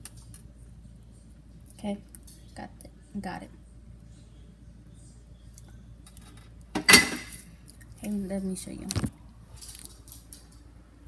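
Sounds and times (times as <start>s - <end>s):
dishware clinking on hard surface: 6.8s - 7.5s.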